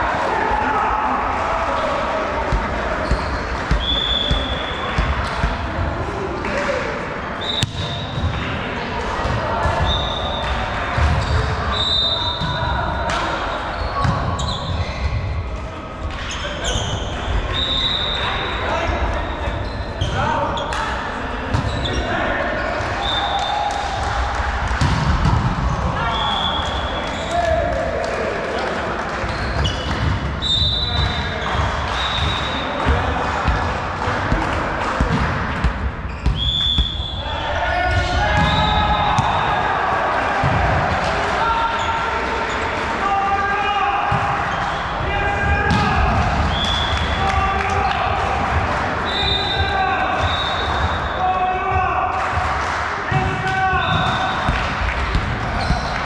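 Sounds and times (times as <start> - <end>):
players calling out: 0.0 - 52.4
sneakers squeaking on floor: 2.5 - 5.6, 7.4 - 8.5, 9.2 - 12.7, 13.5 - 15.4, 16.1 - 18.6, 19.2 - 20.8, 21.5 - 23.3, 29.2 - 33.6, 35.0 - 39.6, 49.0 - 51.2, 53.7 - 56.0
volleyball being struck: 7.6 - 8.4.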